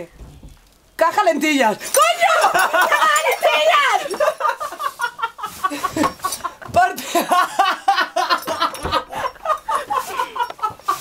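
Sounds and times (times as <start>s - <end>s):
young people laughing: 2.2s - 11.0s.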